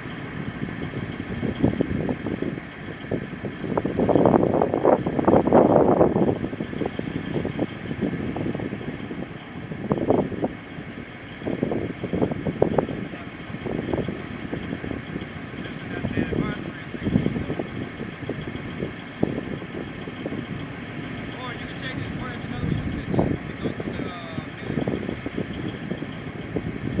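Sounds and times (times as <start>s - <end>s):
diesel engine idling: 0.0s - 27.0s
wind gusts on microphone: 0.0s - 27.0s.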